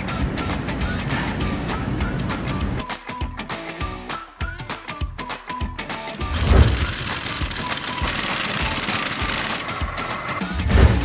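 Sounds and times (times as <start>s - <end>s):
background music: 0.0s - 11.0s
pneumatic impact wrench: 6.3s - 11.0s.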